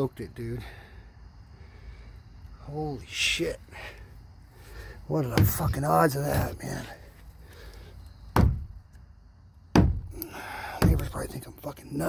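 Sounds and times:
knocks on wooden boards: 5.3s - 6.6s, 8.3s - 8.8s, 9.7s - 10.2s, 10.8s - 11.2s.

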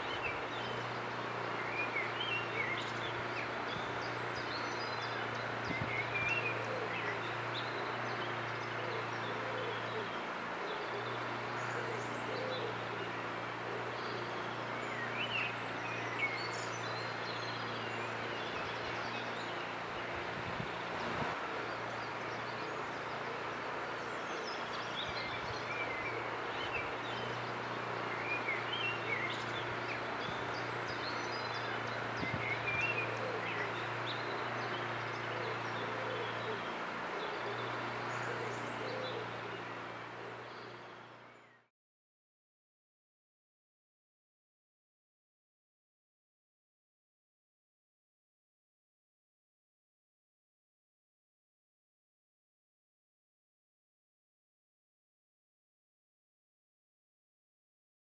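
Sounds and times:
steady background noise: 0.0s - 41.4s
small birds chirping and singing: 0.0s - 41.7s.

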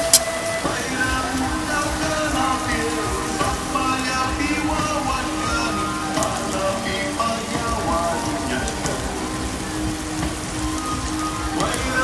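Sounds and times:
meat sizzling on a griddle: 0.0s - 12.0s.

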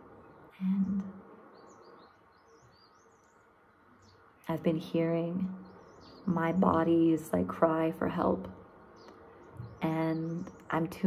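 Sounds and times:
small bird chirping: 0.2s - 6.8s, 8.4s - 11.0s.

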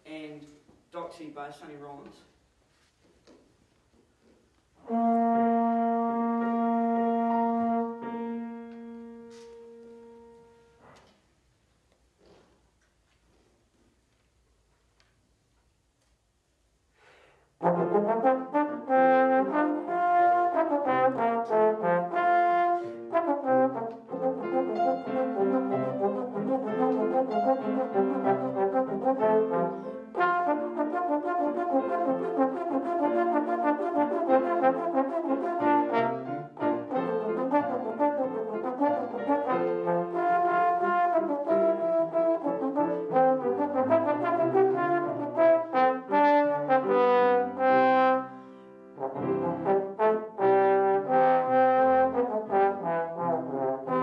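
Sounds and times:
trombone melody: 4.8s - 10.8s, 17.6s - 54.0s
grand piano accompaniment: 4.8s - 11.4s, 17.6s - 54.0s.

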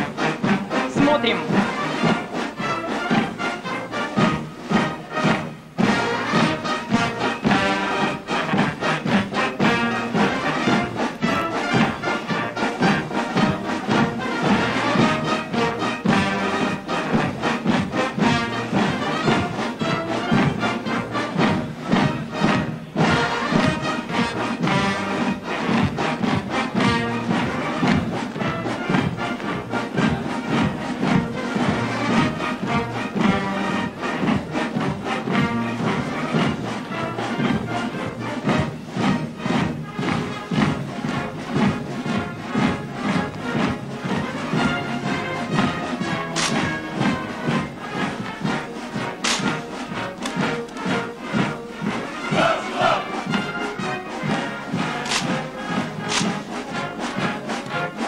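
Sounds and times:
brass band playing a march: 0.0s - 58.0s
rifle drill clacks: 46.3s - 47.2s, 49.2s - 51.0s, 54.9s - 57.8s.

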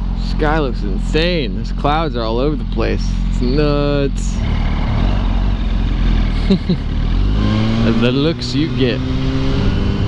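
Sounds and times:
motorcycle engine cruising: 0.0s - 10.0s
person laughing: 6.3s - 7.0s.

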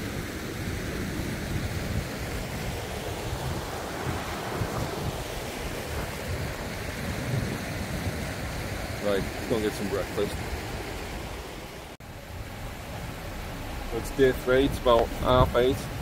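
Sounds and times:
river rushing over rocks: 0.0s - 16.0s
wind buffeting microphone: 0.0s - 16.0s.

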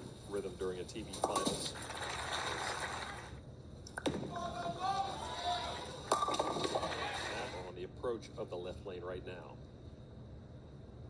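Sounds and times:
bowling pins crashing: 6.0s - 7.5s.

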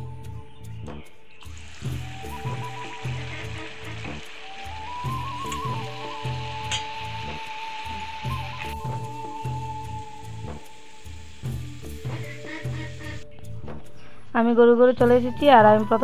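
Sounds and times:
background music with steady beat: 0.0s - 16.0s
hot oil sizzling in a wok: 1.4s - 13.2s.

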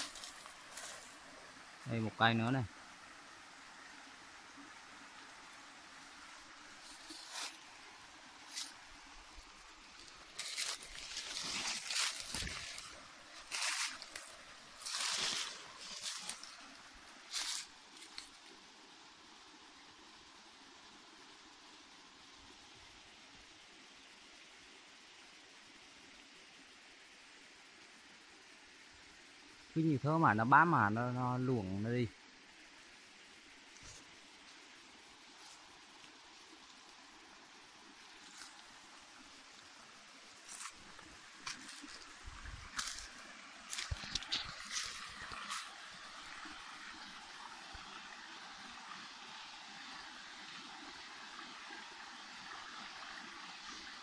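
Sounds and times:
footsteps rustling dry leaves: 0.0s - 1.5s, 6.7s - 18.5s, 38.1s - 39.6s, 40.3s - 46.3s
steady faint hiss: 0.0s - 54.0s.

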